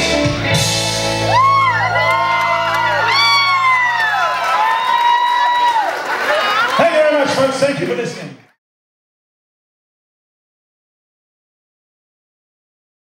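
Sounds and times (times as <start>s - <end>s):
audience cheering and whooping: 1.2s - 8.0s.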